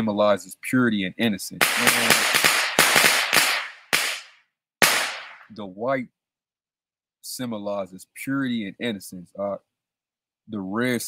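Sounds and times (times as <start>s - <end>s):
firecrackers crackling: 1.6s - 5.5s.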